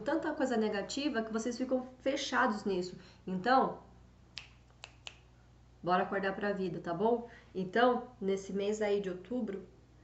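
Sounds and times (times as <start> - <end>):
finger clicks: 4.3 - 5.3.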